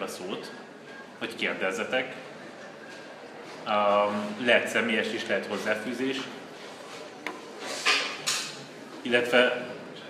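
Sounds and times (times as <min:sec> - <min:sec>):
short rustling scrape: 0:06.6 - 0:08.2.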